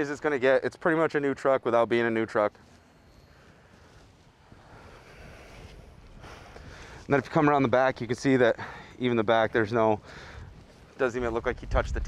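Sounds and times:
outdoor background noise: 0.0 - 12.0
wind rumble on microphone: 10.3 - 12.0.

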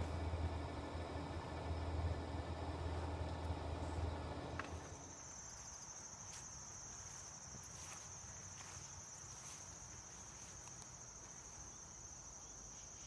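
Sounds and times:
low room hum: 0.0 - 5.2
crickets chirping: 0.0 - 13.0.

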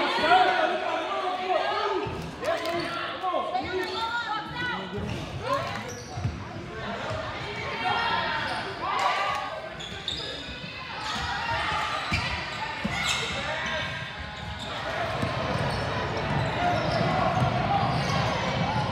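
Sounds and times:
people calling out and shouting: 0.0 - 15.0.

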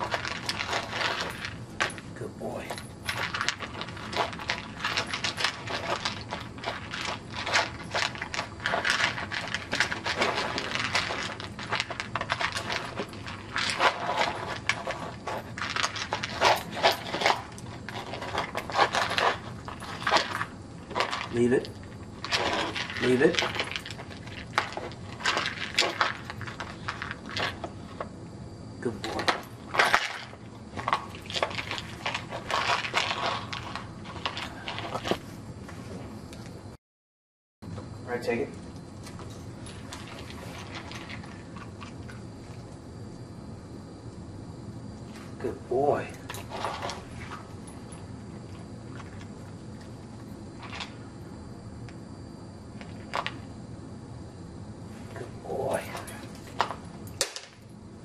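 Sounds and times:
dog eating from a bowl: 0.0 - 28.1, 28.8 - 35.2, 38.1 - 42.8, 45.2 - 51.2, 55.0 - 57.3.

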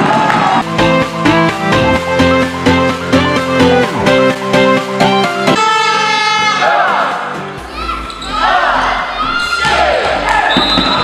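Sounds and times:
background music: 0.0 - 11.0
crowd noise: 5.5 - 11.0
sneakers squeaking on floor: 10.5 - 11.0.

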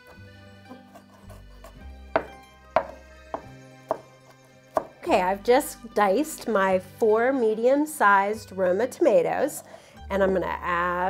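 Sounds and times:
soft background music: 0.0 - 11.0
knife knocking on wooden board: 2.1 - 4.1, 4.7 - 5.0.

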